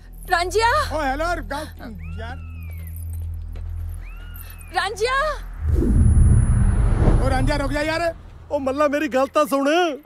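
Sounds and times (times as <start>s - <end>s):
low hum: 5.3s - 9.2s.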